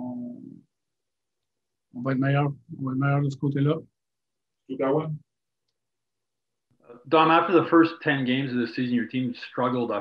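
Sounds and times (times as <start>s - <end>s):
man speaking: 0.0s - 0.6s, 2.0s - 3.9s, 4.7s - 5.2s, 6.9s - 10.0s.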